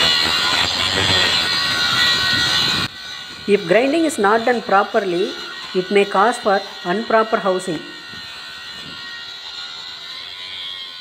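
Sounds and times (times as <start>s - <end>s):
angle grinder grinding steel: 0.0s - 11.0s.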